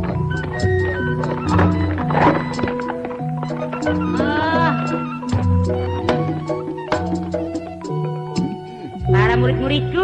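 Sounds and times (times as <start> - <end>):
gamelan music: 0.0 - 10.0
wavering high cry: 0.4 - 9.3.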